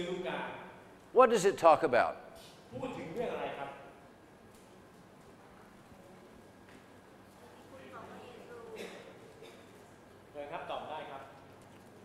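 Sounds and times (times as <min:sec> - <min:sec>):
man speaking: 0:01.2 - 0:03.8.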